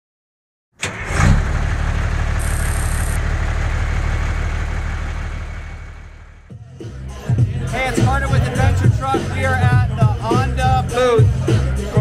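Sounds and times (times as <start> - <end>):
engine starting and running: 0.8 - 6.5.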